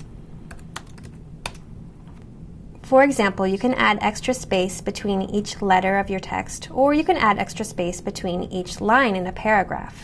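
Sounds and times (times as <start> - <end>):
computer keyboard keystrokes: 0.0 - 1.7.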